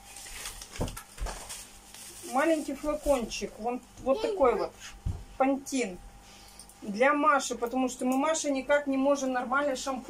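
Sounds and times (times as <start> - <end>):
bubble wrap rustling: 0.0 - 3.6.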